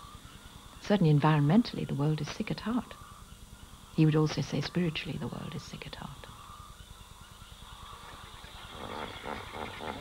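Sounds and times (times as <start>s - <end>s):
bird calls: 0.0s - 10.0s.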